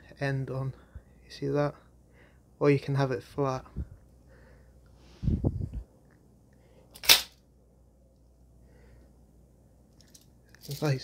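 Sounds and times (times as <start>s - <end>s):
baton snapping open: 7.0s - 7.4s
muffled handling sound: 9.9s - 11.0s.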